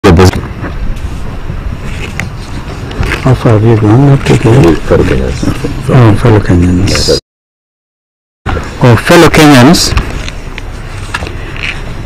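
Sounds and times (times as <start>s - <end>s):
low outdoor rumble: 0.0s - 7.2s.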